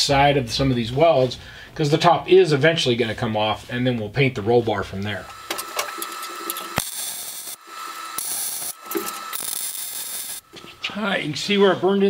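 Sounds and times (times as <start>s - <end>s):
arc welding bursts: 5.3s - 10.6s.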